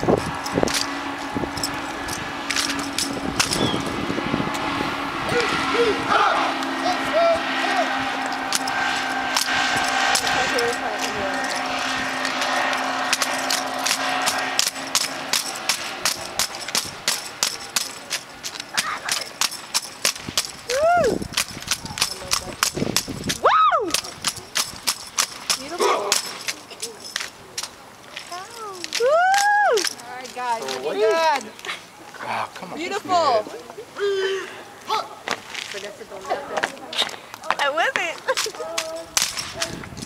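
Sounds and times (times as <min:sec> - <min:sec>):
hands slapping rifles: 0:38.3 - 0:39.7.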